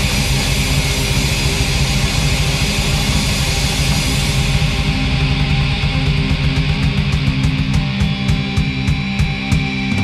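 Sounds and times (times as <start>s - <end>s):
distorted electric guitar: 0.0s - 10.0s
drums: 0.0s - 10.0s.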